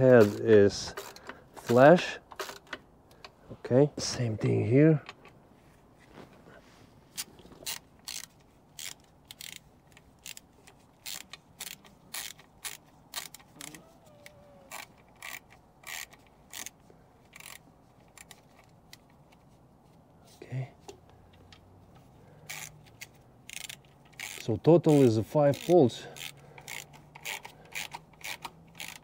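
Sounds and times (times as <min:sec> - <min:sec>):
ratchet wrench clicking: 0:00.0 - 0:01.7, 0:02.3 - 0:02.8, 0:07.2 - 0:13.8, 0:14.7 - 0:19.1, 0:22.4 - 0:29.0.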